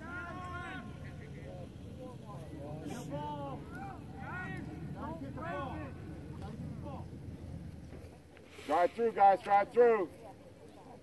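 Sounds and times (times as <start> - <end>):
distant voices shouting calls: 0.0 - 7.6
steady low rumble: 0.0 - 8.3.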